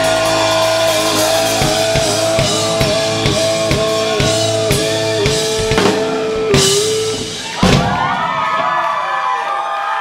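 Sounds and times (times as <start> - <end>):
audience cheering and whooping: 7.0 - 10.0.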